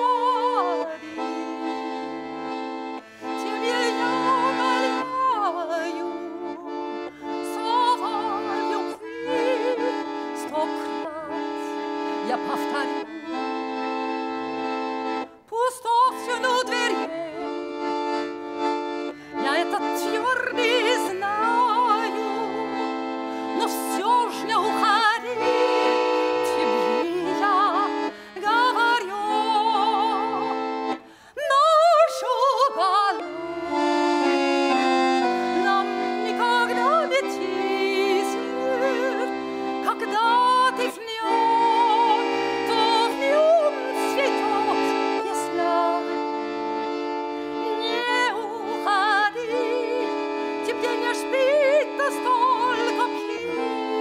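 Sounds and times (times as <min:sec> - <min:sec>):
woman singing with vibrato: 0:00.0 - 0:02.3, 0:03.0 - 0:13.4, 0:15.4 - 0:17.7, 0:19.3 - 0:34.2, 0:35.3 - 0:46.4, 0:47.6 - 0:54.0
piano accordion chords: 0:00.0 - 0:54.0.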